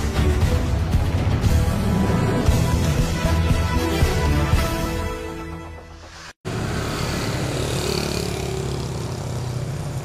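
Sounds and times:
theme music: 0.0s - 6.4s
street traffic noise: 4.4s - 10.0s
motorbike passing: 6.5s - 10.0s.

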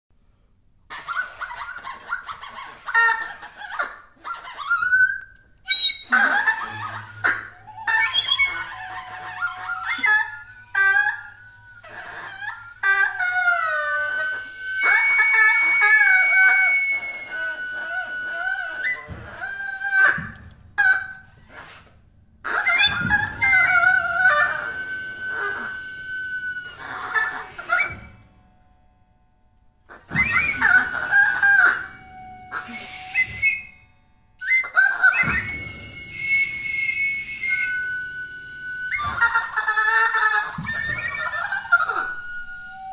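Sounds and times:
duck call squawking quacks: 0.9s - 4.9s.

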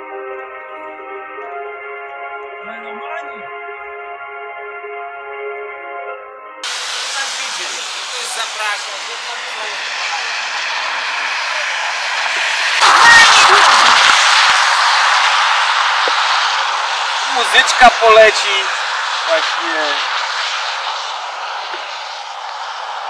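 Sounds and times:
outdoor rushing noise: 6.6s - 23.0s.

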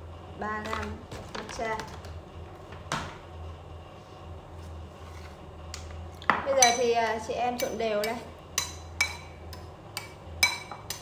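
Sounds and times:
low steady hum: 0.0s - 11.0s
kitchenware tapping hard surface: 7.6s - 11.0s.

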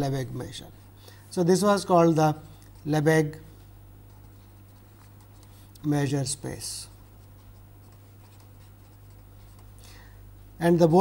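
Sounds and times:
steady low hum: 0.0s - 11.0s
felt-tip marker scratching paper: 6.9s - 9.7s.

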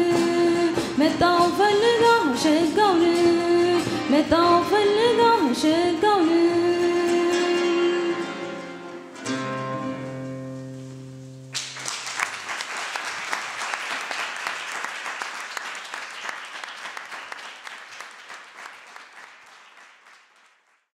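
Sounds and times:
audience applause: 11.6s - 20.9s.

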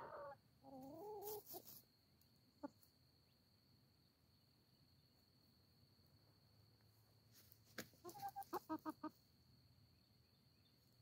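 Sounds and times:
chicken clucking: 0.0s - 1.8s, 2.5s - 2.9s, 7.8s - 9.3s.

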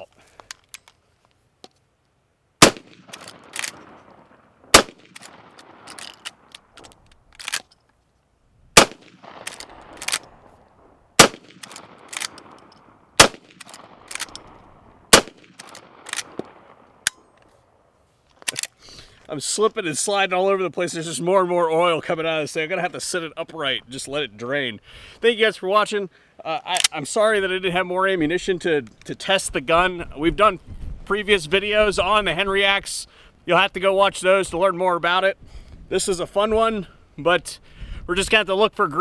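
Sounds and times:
shotgun shots echoing: 2.6s - 6.8s, 8.8s - 10.6s, 11.2s - 17.0s.

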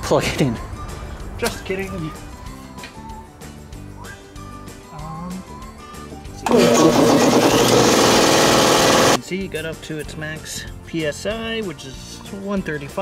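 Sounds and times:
air compressor running: 6.5s - 9.2s.

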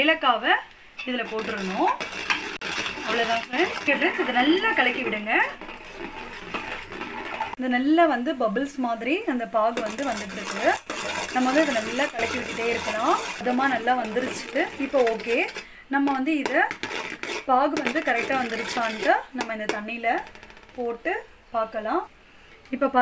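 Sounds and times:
spoon scraping a metal pot: 1.0s - 7.6s, 9.7s - 20.5s
person talking: 3.0s - 5.6s, 11.4s - 16.6s.

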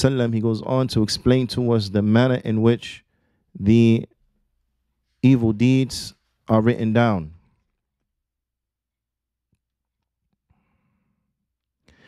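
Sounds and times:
man breathing softly: 10.5s - 12.0s.

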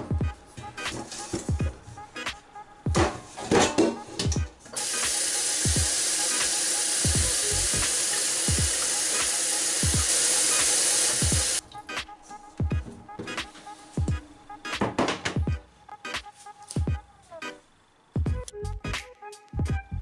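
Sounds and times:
tap water pouring into a pot: 4.8s - 11.6s.

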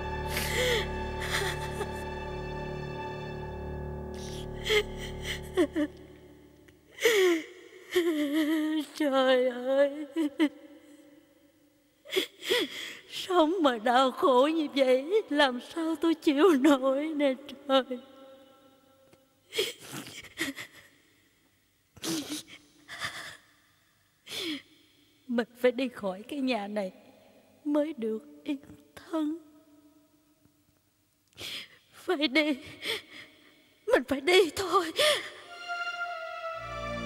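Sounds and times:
background music: 0.0s - 6.7s, 35.0s - 37.0s
woman sobbing: 0.2s - 2.1s, 4.2s - 6.0s, 6.9s - 10.6s, 12.1s - 13.1s, 19.5s - 20.9s, 22.0s - 23.4s, 34.6s - 35.6s
woman crying: 0.3s - 2.1s, 4.2s - 6.0s, 7.0s - 10.6s, 19.6s - 20.9s, 22.1s - 23.4s.

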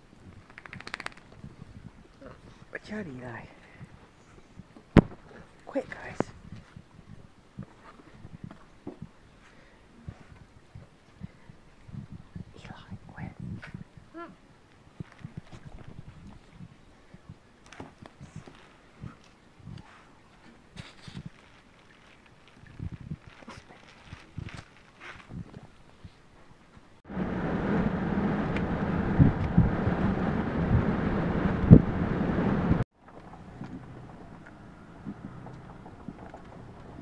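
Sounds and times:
rushing wind: 0.0s - 9.3s, 9.9s - 14.1s, 14.9s - 20.0s, 22.6s - 26.2s, 27.0s - 37.0s
car road noise hum: 27.1s - 37.0s.

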